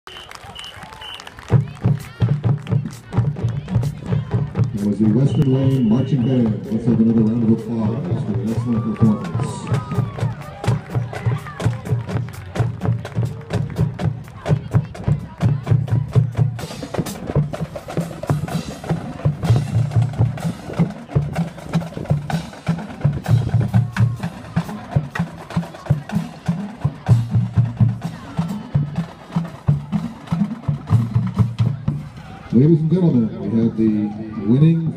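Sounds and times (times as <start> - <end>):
snare and bass drums: 1.5 - 32.2.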